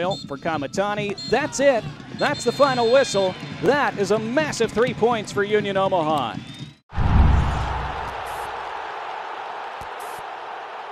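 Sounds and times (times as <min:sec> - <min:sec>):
deep boom rumbling: 0:06.9 - 0:08.6.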